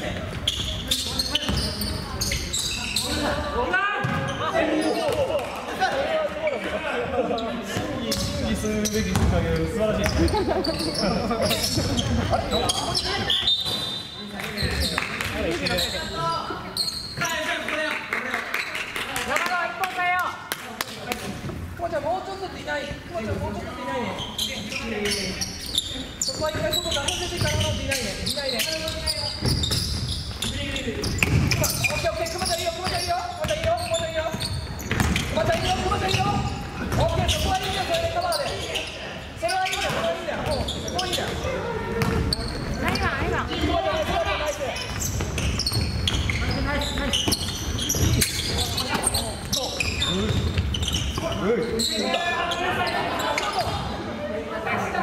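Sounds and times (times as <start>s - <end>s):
basketball bouncing on wooden floor: 9.1s - 9.3s, 34.9s - 35.8s, 42.0s - 43.4s.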